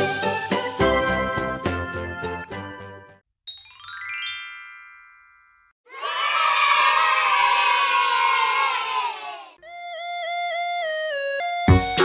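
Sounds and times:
children cheering and shouting: 5.9 - 9.6
tune playing: 9.6 - 12.0.

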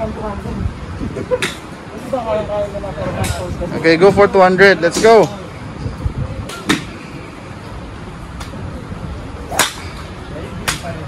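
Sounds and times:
golf club cracking ball: 9.5 - 9.9.

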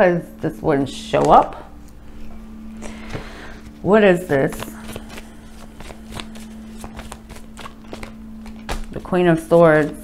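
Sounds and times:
cards being shuffled: 3.0 - 10.0.

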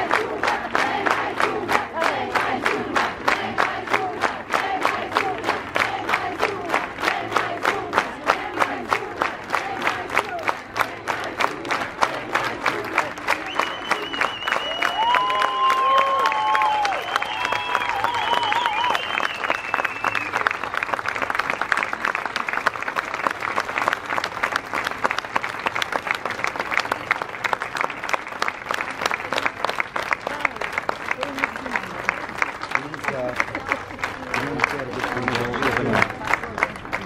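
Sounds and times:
crowd clapping: 0.0 - 37.0.

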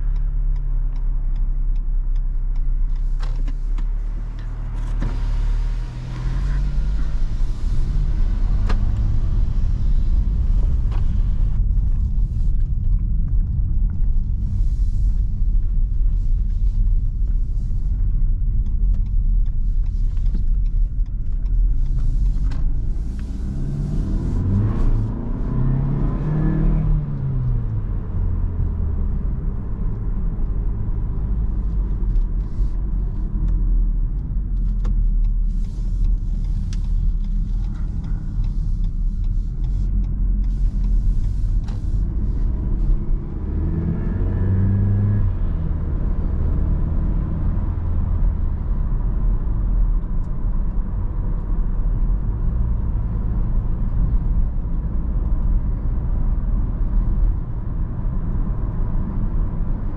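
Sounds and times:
car engine accelerating: 0.0 - 59.9
road and tyre rumble: 0.0 - 59.9.

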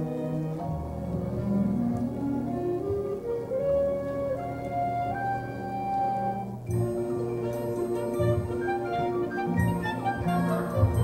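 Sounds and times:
low orchestral accent: 0.0 - 11.0
orchestra playing sustained notes: 0.0 - 11.0.

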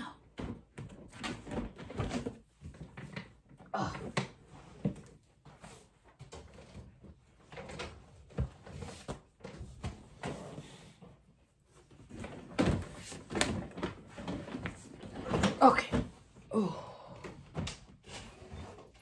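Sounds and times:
furniture knocking and scraping: 4.3 - 11.3, 11.9 - 16.4.

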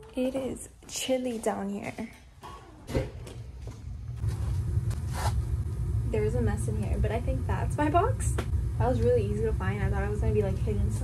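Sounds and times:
heating equipment rumble: 2.9 - 11.0.

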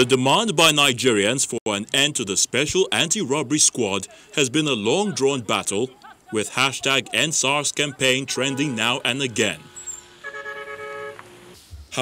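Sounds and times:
faint road noise: 0.0 - 12.0
car horn blare: 7.9 - 11.6.

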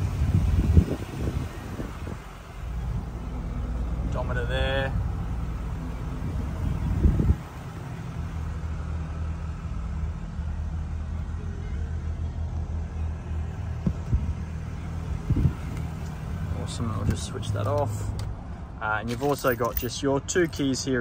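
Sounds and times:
car engine idling: 0.0 - 21.0.

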